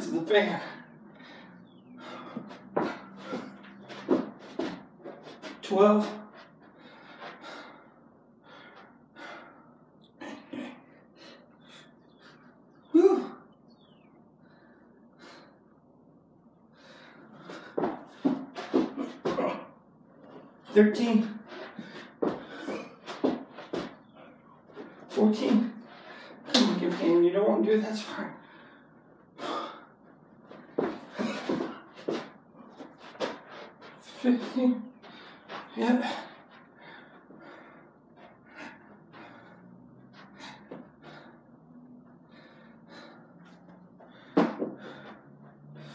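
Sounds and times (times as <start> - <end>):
man panting: 0.3 - 13.5, 14.4 - 15.8, 16.7 - 20.7, 21.3 - 26.9, 27.8 - 45.9.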